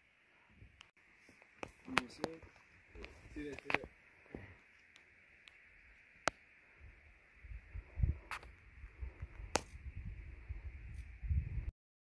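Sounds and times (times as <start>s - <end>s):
wind rumble on microphone: 6.8s - 11.7s.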